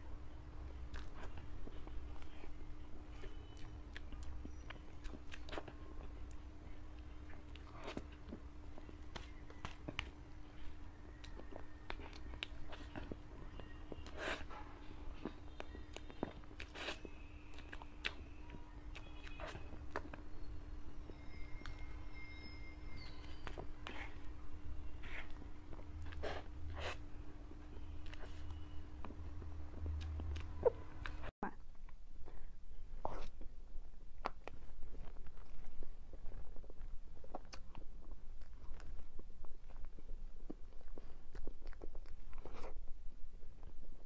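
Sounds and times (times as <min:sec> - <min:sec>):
person chewing soft cake: 0:00.0 - 0:31.3, 0:32.2 - 0:44.0.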